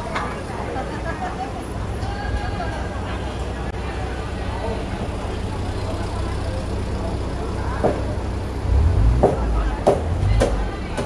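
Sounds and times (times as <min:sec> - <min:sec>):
chatter of passers-by: 0:00.0 - 0:11.0
minibus engine idling: 0:00.0 - 0:11.0.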